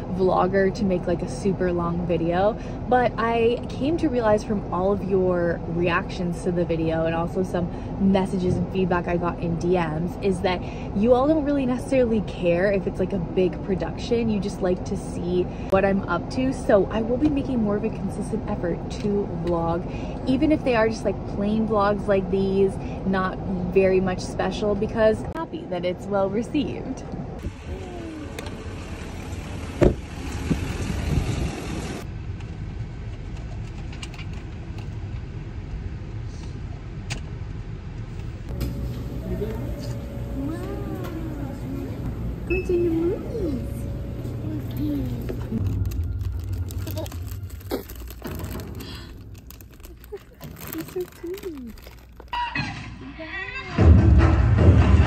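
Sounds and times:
vocal sound falling in pitch: 27.5s - 28.6s
car rumble from inside cabin: 38.5s - 47.5s
faint voices: 39.0s - 45.8s.

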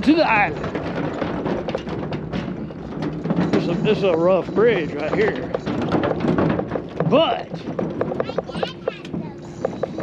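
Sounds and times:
wheels knocking on wooden boards: 0.0s - 10.0s.

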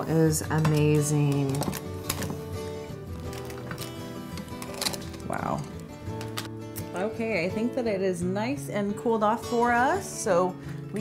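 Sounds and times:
background music with sustained notes: 0.0s - 11.0s.

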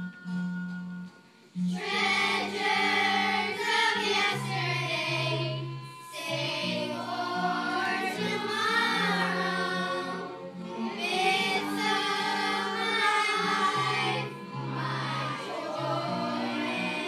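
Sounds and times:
girls choir singing: 1.7s - 17.0s.

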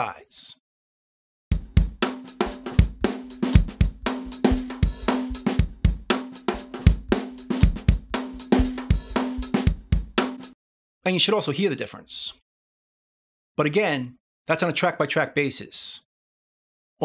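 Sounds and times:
drum beat: 1.5s - 10.6s.

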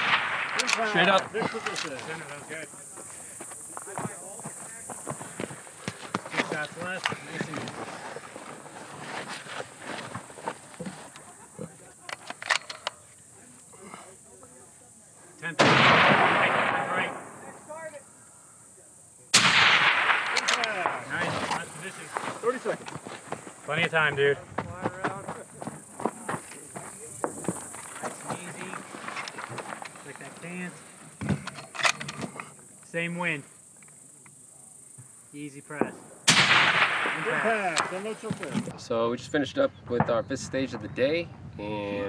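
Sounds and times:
rifle shots with echo: 0.0s - 1.3s, 15.6s - 17.6s, 19.3s - 21.2s, 35.9s - 38.1s.

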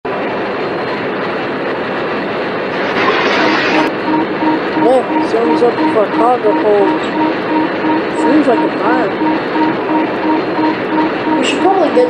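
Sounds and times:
repeating warning tone: 3.0s - 12.0s.

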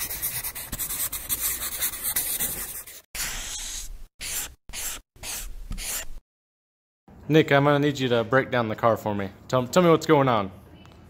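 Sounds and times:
marker scribbling on surface: 0.0s - 6.2s.

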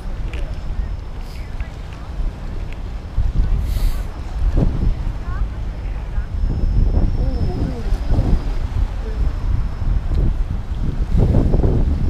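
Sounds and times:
surf hiss: 0.0s - 12.0s
wind buffeting microphone: 0.0s - 12.0s.

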